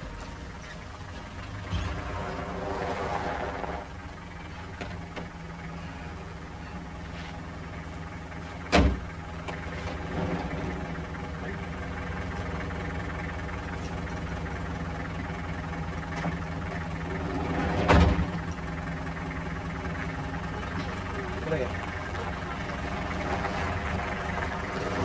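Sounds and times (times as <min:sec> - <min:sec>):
steady low hum: 0:00.0 - 0:25.0
van doors slamming: 0:08.5 - 0:11.0, 0:17.3 - 0:18.5.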